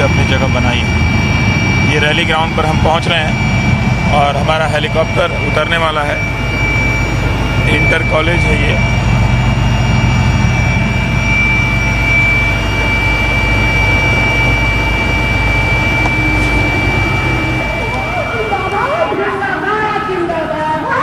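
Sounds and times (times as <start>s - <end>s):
helicopter engine and rotor drone: 0.0s - 21.0s
high whine: 0.0s - 21.0s
voices: 0.0s - 21.0s.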